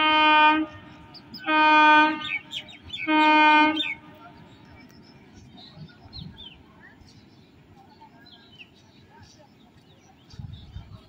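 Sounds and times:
train horn blasts: 0.0 - 4.2.

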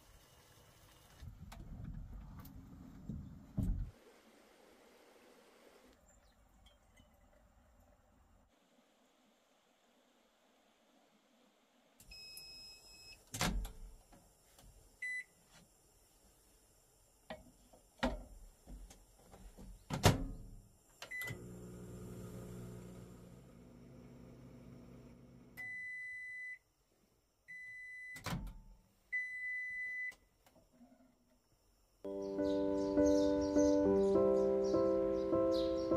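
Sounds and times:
microwave keypad beeps: 15.0 - 15.3, 25.6 - 26.6, 27.5 - 28.3, 29.2 - 30.2
microwave humming: 21.1 - 26.0.

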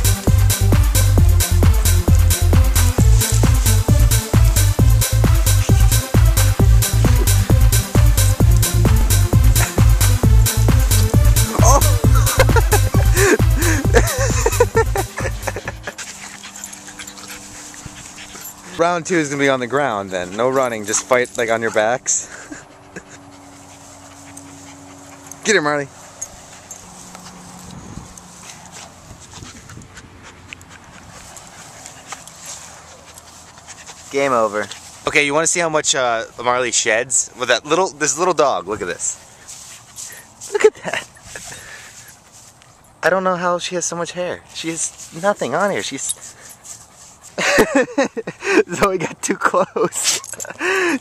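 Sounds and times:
background music: 0.0 - 16.0
dogs panting: 0.0 - 51.0
rustling in grass: 1.4 - 42.9, 44.4 - 48.1.

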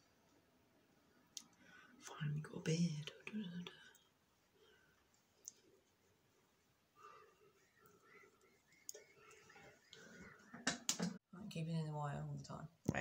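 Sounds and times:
woman speaking: 2.0 - 3.9.

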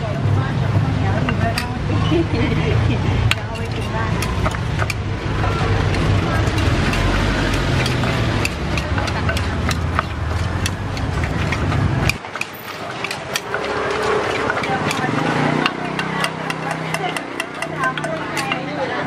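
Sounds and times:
street traffic rumble: 0.0 - 19.0
pestle knocking in mortar: 3.2 - 18.7.

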